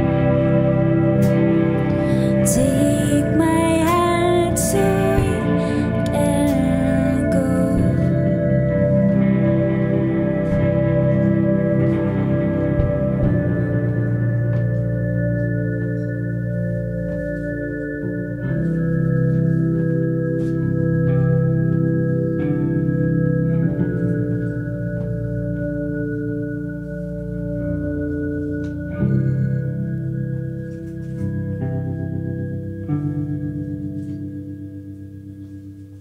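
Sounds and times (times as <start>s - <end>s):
deep bass line: 0.0s - 34.9s
electric keyboard chords: 0.0s - 36.0s
guitar: 0.0s - 36.0s.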